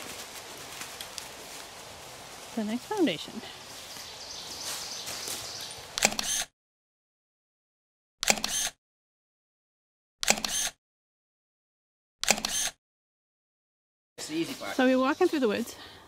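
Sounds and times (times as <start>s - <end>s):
camera shutter click: 6.0s - 6.5s, 8.2s - 8.8s, 10.2s - 10.8s, 12.2s - 12.8s.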